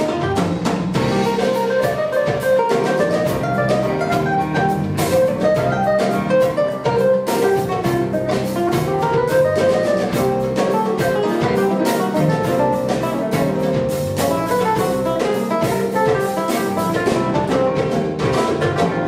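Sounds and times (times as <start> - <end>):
bass guitar: 0.0 - 19.0
drum kit beat: 0.0 - 19.0
electric guitar: 0.0 - 19.0
electric keyboard: 0.0 - 19.0.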